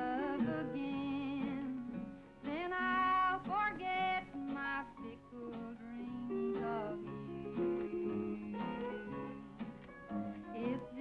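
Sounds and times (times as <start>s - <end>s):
woman singing country song: 0.0s - 9.4s, 10.3s - 11.0s
acoustic guitar and string band: 0.0s - 11.0s.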